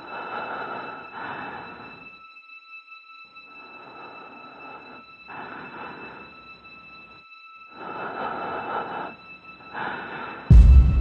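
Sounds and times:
rumbling noise swells: 0:10.5 - 0:11.0.

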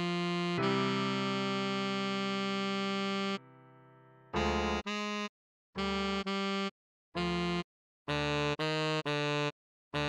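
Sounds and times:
synthesized saxophone melody: 0:00.0 - 0:03.6, 0:04.4 - 0:10.0.

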